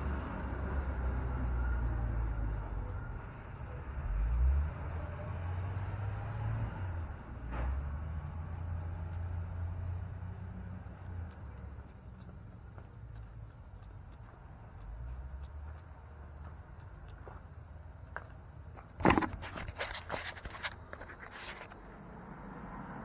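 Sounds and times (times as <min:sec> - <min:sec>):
camera handling knocks and rustling: 0:19.0 - 0:21.7.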